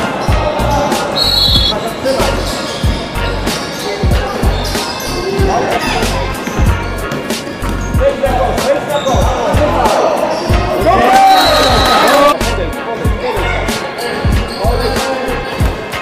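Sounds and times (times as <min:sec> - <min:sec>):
players calling out: 0:00.1 - 0:12.4.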